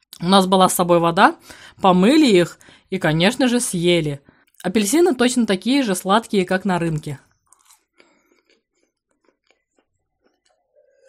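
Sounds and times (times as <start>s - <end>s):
woman speaking: 0.0s - 7.3s
woman chewing: 7.3s - 11.0s.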